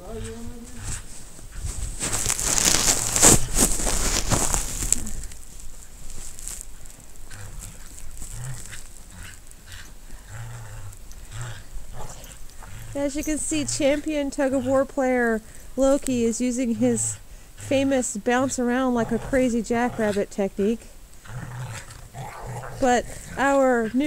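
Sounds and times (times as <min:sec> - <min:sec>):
loud rustling noise: 0:00.3 - 0:09.8
dogs growling: 0:07.2 - 0:24.0.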